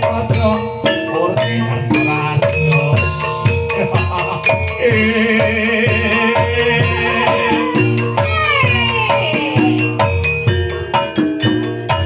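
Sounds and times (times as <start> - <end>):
high wavering melody: 0.0 - 12.0
metallophones and drum beat: 0.0 - 12.0.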